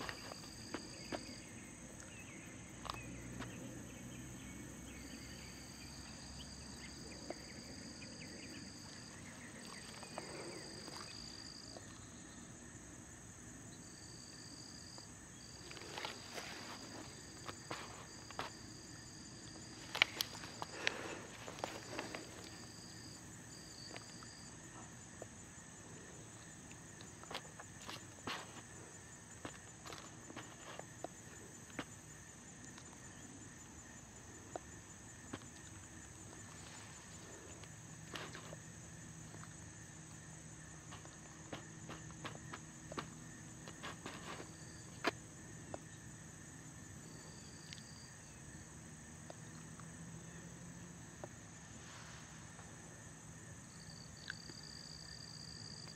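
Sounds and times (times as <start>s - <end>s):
insect buzz: 0.0s - 55.9s
insects chirring: 0.0s - 55.9s
small clicks and rustles: 19.7s - 22.6s.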